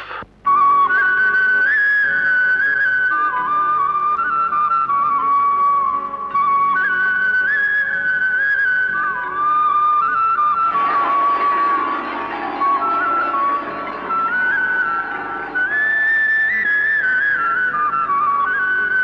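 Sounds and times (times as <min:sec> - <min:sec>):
soft accompaniment: 0:00.1 - 0:19.0
slow flute melody: 0:00.4 - 0:19.0.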